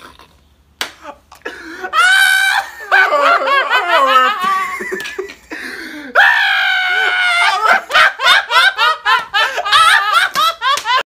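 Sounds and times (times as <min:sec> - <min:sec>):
man laughing: 0:01.0 - 0:11.0.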